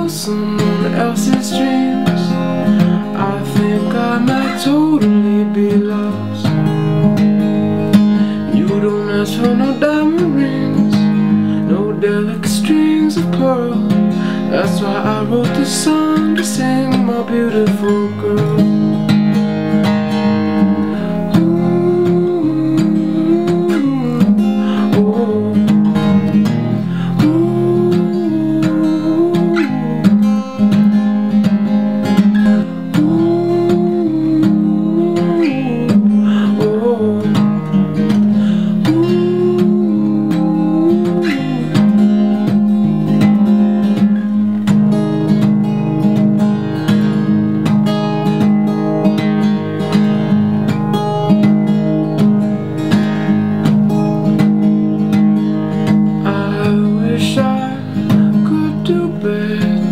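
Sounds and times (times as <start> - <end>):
acoustic guitar strumming chords: 0.0 - 59.9
wordless vocal melody: 0.0 - 59.9.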